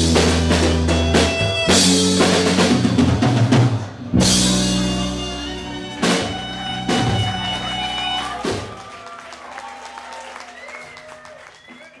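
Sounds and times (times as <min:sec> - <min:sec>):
live band chord ringing out: 0:00.0 - 0:08.5
audience clapping: 0:06.6 - 0:12.0.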